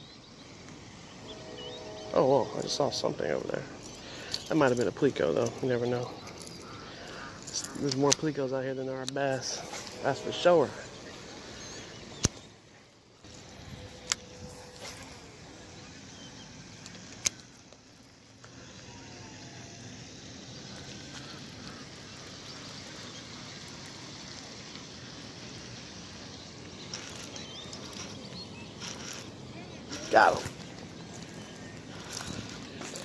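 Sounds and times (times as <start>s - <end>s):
outdoor background noise: 0.0s - 33.0s.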